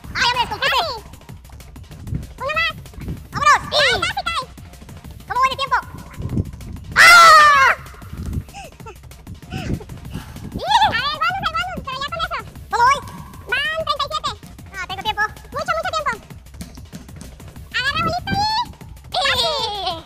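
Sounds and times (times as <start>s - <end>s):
basketball bouncing: 0.0s - 10.0s, 11.0s - 19.7s
shoes squeaking on hardwood: 12.8s - 18.5s.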